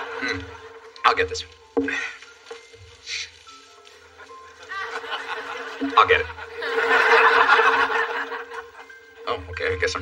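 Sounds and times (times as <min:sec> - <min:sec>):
studio audience laughing: 0:00.0 - 0:00.9, 0:04.2 - 0:09.0.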